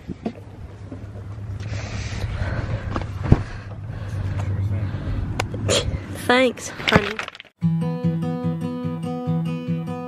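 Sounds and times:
steady low hum: 0:00.0 - 0:06.7.

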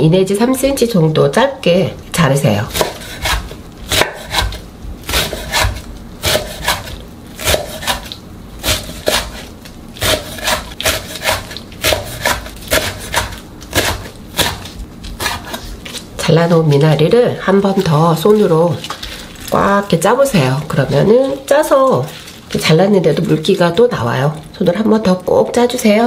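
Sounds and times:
knife chopping on wooden board: 0:02.7 - 0:15.6.

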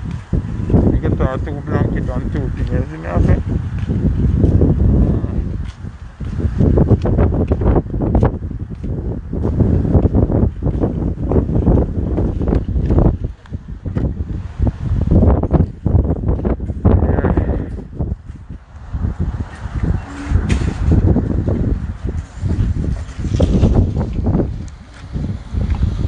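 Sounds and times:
microphone handling noise: 0:00.0 - 0:26.0
wind buffeting microphone: 0:00.0 - 0:26.0.

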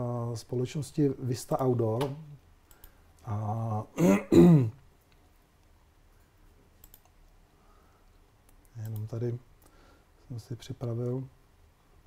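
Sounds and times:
computer mouse clicks: 0:02.0 - 0:03.0, 0:06.8 - 0:07.4, 0:08.4 - 0:09.2
man coughing: 0:04.0 - 0:04.8.

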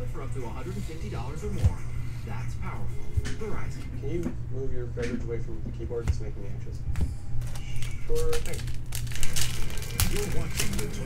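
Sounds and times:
foil wrapper crinkling: 0:07.4 - 0:11.0.

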